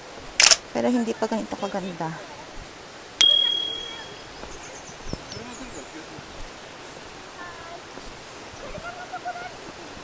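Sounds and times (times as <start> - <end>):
bright bell ding: 3.2 - 4.1.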